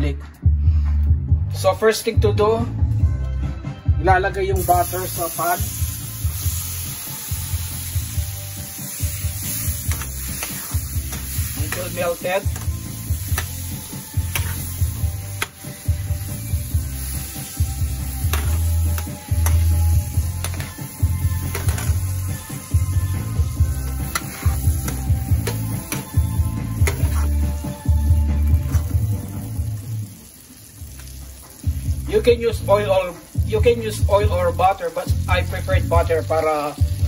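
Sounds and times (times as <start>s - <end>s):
butter sizzling in frying pan: 4.6s - 37.0s
music with pulsing bass line: 5.7s - 30.0s
metal spoon clicking against pan: 20.4s - 20.7s.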